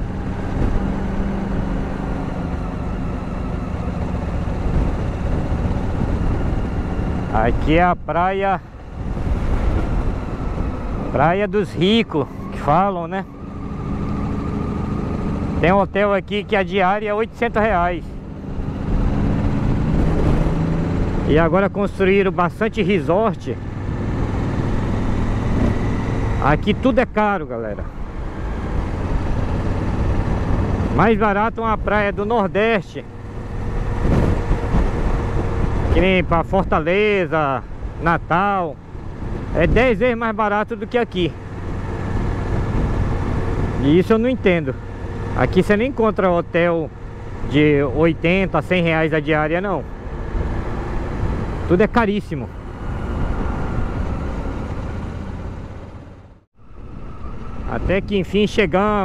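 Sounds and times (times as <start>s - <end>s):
motorcycle engine cruising: 0.0s - 59.0s
wind and road noise: 0.0s - 59.0s.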